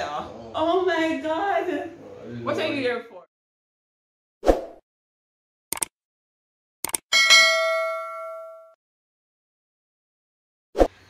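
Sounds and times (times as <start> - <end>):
electronic bell ding: 7.1 - 8.8.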